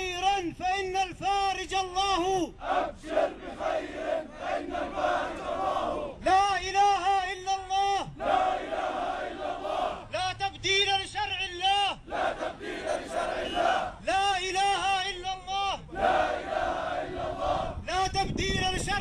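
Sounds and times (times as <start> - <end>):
crowd chanting in unison: 2.5 - 6.2, 8.0 - 10.1, 12.0 - 14.1, 15.8 - 17.9
man chanting through loudspeaker: 17.8 - 19.0.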